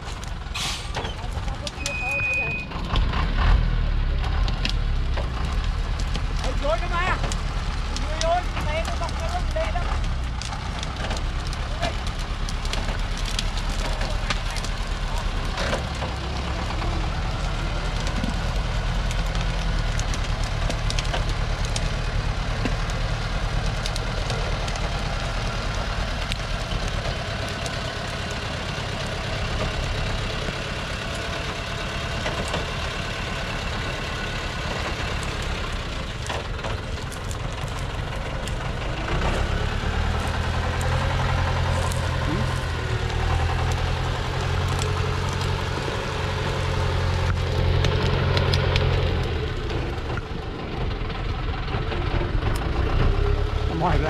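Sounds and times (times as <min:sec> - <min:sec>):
truck diesel engine under load: 0:00.0 - 0:54.0.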